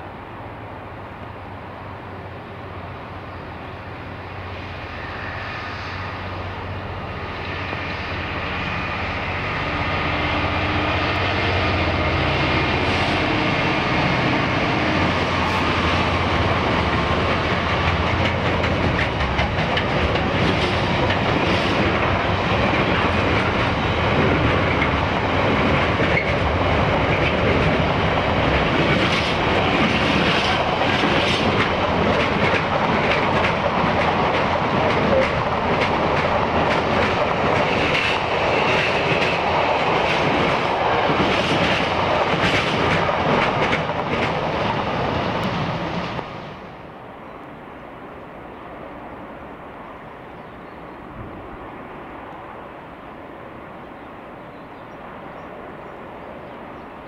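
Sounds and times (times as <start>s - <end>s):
train wheels rumbling: 0.0s - 47.3s
diesel locomotive engine: 0.0s - 57.0s
wheels clicking over rail joints: 16.4s - 45.6s.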